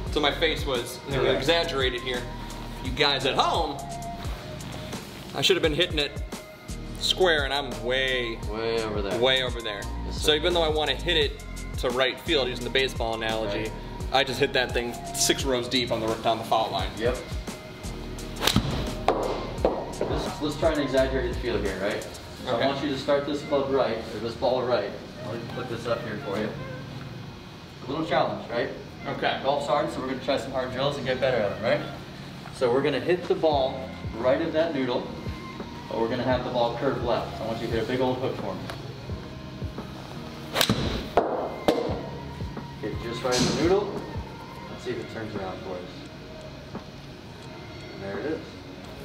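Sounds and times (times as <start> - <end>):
background music: 0.0 - 49.0
golf club striking ball: 18.4 - 19.8, 40.5 - 41.9
golf iron striking ball: 40.5 - 41.5.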